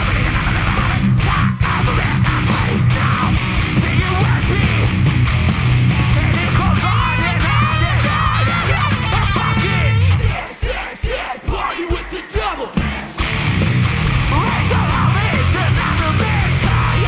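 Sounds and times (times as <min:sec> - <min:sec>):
heavy metal band playing: 0:00.0 - 0:17.0.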